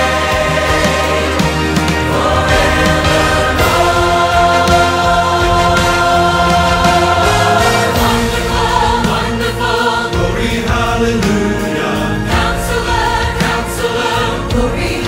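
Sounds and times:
choir with orchestra: 0.0 - 15.0.

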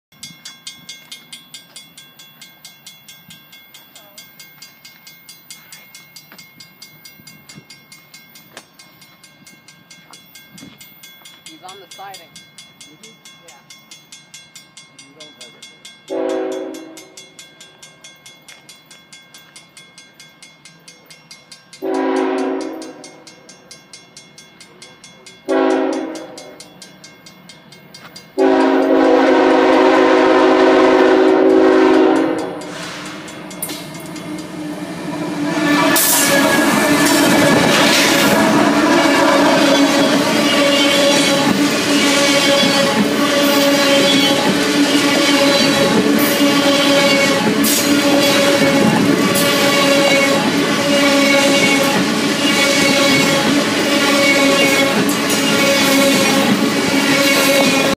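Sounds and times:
locomotive horn blasts: 16.1 - 17.1, 21.8 - 23.0, 25.5 - 26.6, 28.4 - 33.2, 34.2 - 57.9
train cars rumbling past: 21.6 - 57.9
train wheel clatter: 30.8 - 57.9.

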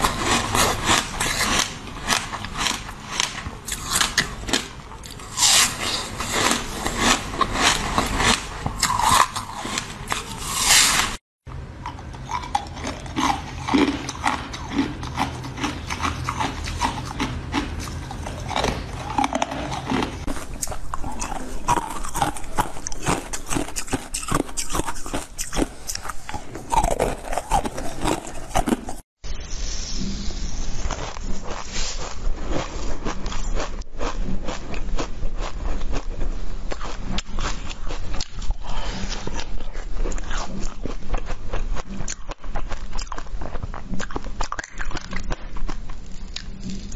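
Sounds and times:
crunching and chewing frozen jelly: 0.0 - 29.1, 30.6 - 46.9.

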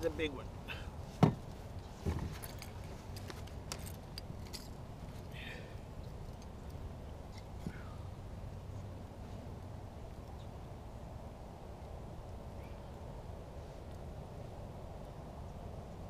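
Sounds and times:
low steady rumble: 0.0 - 16.0
dull thump: 1.2 - 2.4
small clicks and clinks: 2.4 - 5.3.

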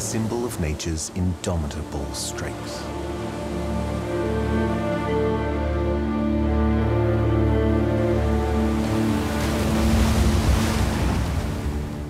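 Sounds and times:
background music of held notes: 0.0 - 12.0
sea water and spray rushing: 0.0 - 12.0.

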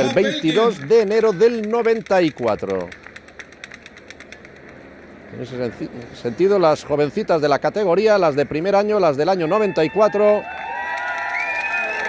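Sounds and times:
outdoor crowd ambience: 0.0 - 12.0
rapid light clicks: 1.1 - 5.0.

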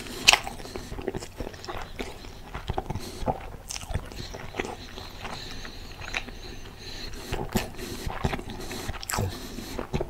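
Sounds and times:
man chewing food: 0.0 - 10.0
moist mouth clicks: 0.0 - 10.0.

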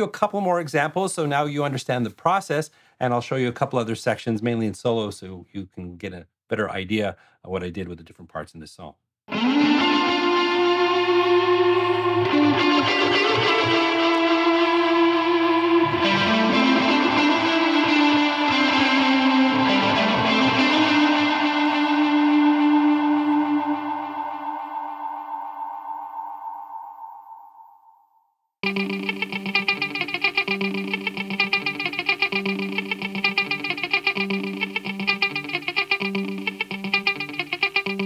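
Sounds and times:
electric guitar with reverb and echoes: 9.3 - 27.7, 28.6 - 38.0.

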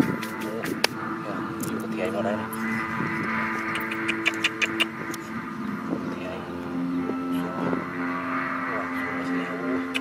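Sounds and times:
steady low drone: 0.0 - 10.0.

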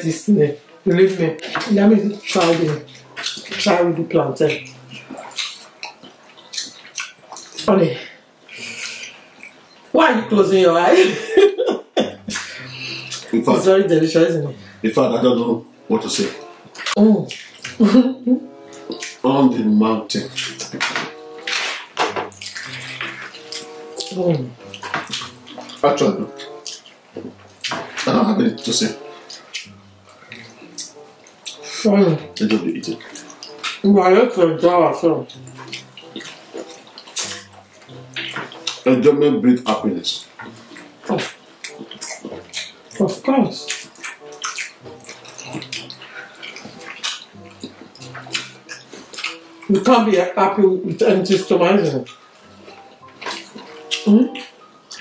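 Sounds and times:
wet chewing and lip-smacking: 1.4 - 3.5, 4.5 - 7.7, 8.5 - 9.9, 12.1 - 13.4, 16.1 - 17.9, 20.2 - 28.1, 28.9 - 33.9, 35.3 - 38.9, 40.3 - 49.9, 51.2 - 55.0.

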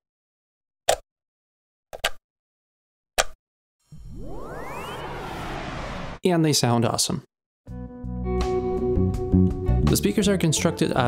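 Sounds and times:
rising musical whoosh: 3.8 - 6.2.

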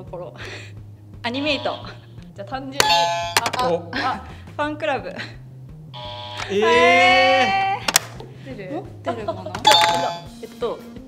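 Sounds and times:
soft background music: 0.0 - 11.0
bright chime: 9.7 - 10.3.

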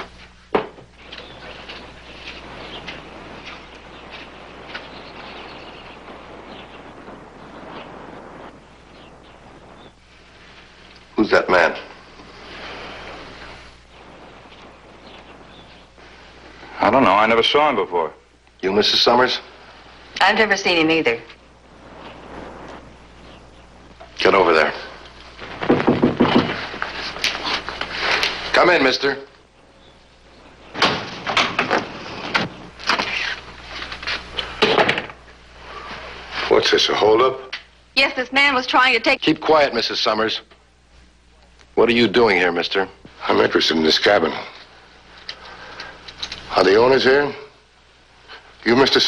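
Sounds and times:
steady hiss: 0.0 - 49.0
bird chirps: 1.0 - 7.9
sharp knock: 25.6 - 26.6.

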